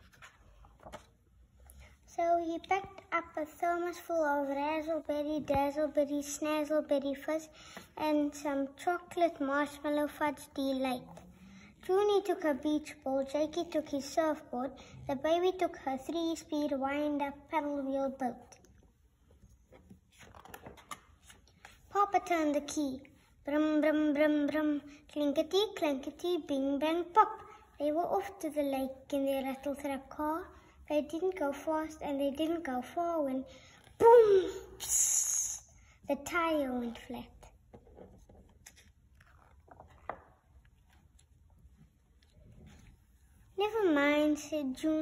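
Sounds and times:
paper page rustling and turning: 0.0s - 1.3s, 19.4s - 21.9s, 38.0s - 43.5s.

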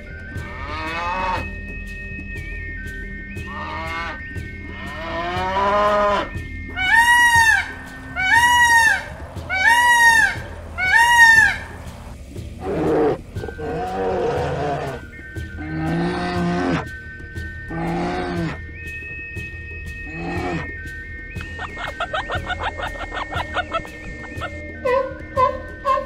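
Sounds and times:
peacock wailing calls: 3.4s - 12.0s, 12.6s - 16.9s, 21.6s - 26.0s
calves mooing: 3.5s - 6.3s.

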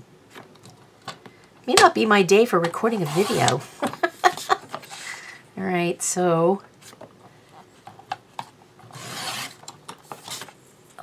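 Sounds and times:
paper trimmer cutting paper: 8.9s - 9.6s.

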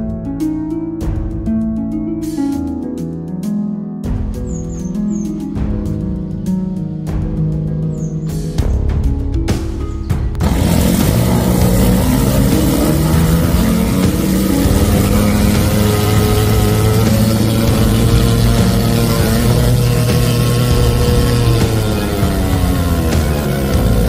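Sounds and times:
engine hum: 8.0s - 24.0s.

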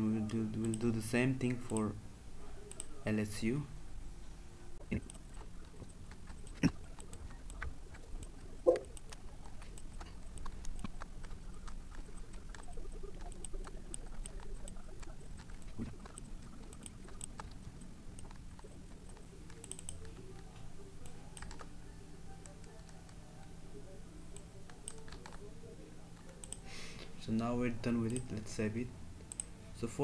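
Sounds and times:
keyboard typing: 4.9s - 23.3s, 24.3s - 25.5s.

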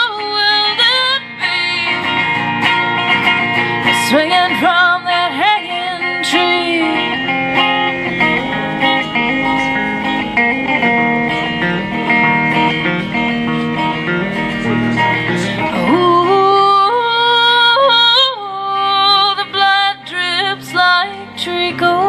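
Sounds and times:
woman singing: 0.0s - 2.2s, 3.8s - 7.4s, 15.6s - 22.0s
electric guitar chords: 0.0s - 22.0s.

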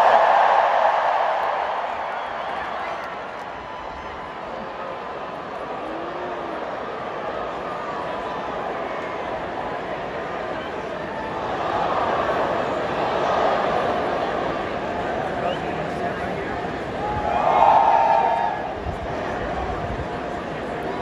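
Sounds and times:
hubbub of many voices: 0.0s - 21.0s
stadium crowd cheering: 0.0s - 21.0s.

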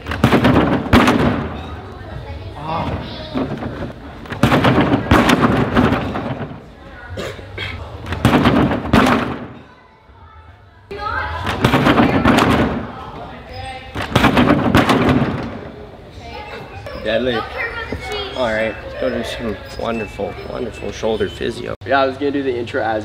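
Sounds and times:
thuds of landings on springboard: 2.8s - 6.7s, 8.1s - 9.6s.

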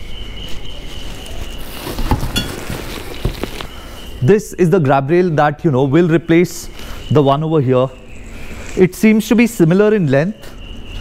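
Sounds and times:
rumbling movement noise: 0.9s - 4.0s.

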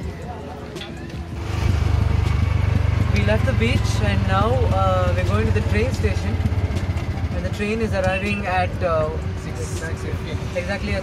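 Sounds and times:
auto-rickshaw engine running: 0.4s - 11.0s.

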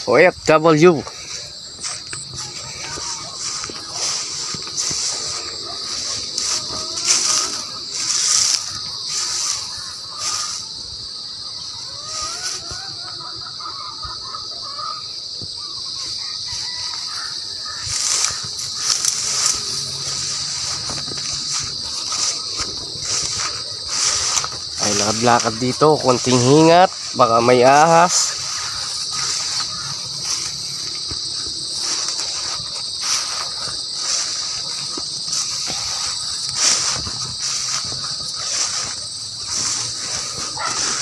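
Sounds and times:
plants rustling: 0.0s - 11.1s, 16.2s - 41.0s
insects droning: 0.0s - 41.0s.

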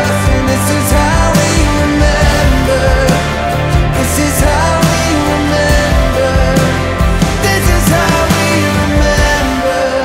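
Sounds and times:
electric guitar: 0.0s - 10.0s
live band playing slow song: 0.0s - 10.0s
steady bass: 0.0s - 10.0s.

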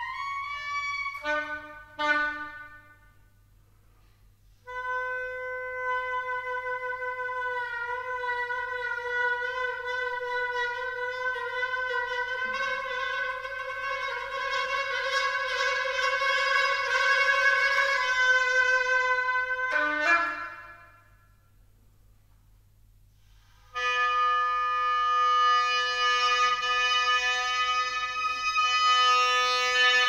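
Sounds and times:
oboe note: 0.0s - 3.0s, 4.6s - 21.1s, 23.7s - 30.0s.

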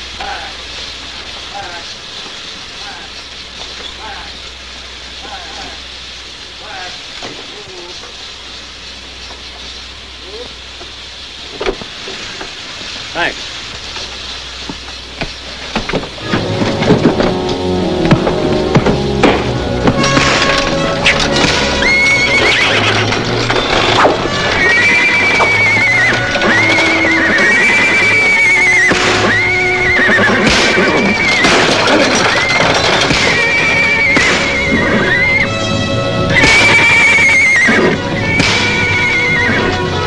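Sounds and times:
scuffling and knocks: 10.8s - 29.5s
dramatic orchestral music: 16.2s - 40.0s.

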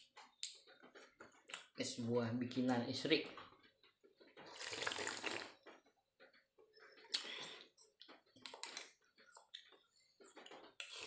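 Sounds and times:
faint mouth sounds: 4.5s - 5.6s
gulp: 4.5s - 5.6s
person slurping a drink: 4.5s - 5.6s, 10.8s - 11.0s.

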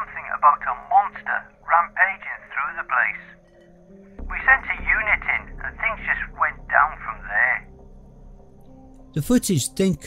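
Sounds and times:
filtered telephone-like voice: 0.0s - 3.4s, 4.3s - 7.7s
low steady background hum: 0.0s - 9.8s.

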